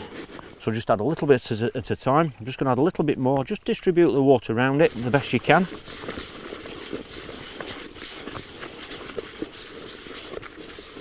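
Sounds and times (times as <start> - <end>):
hands stirring bait in plastic bowl: 4.8 - 11.0.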